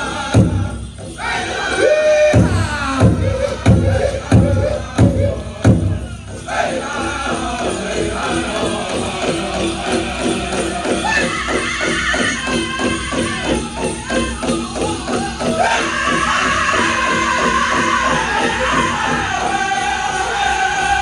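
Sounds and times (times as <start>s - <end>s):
large hand drum beats: 2.3s - 6.1s.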